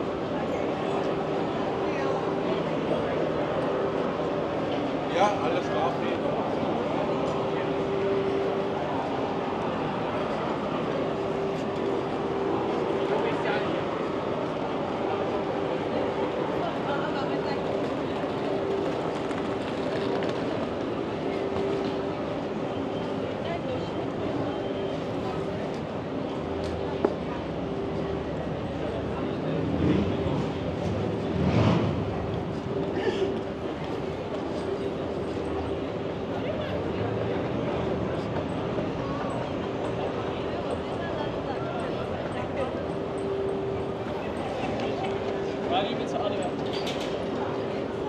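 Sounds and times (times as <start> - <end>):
crowd voices: 0.0 - 48.0
steady mechanical hum: 0.0 - 48.0.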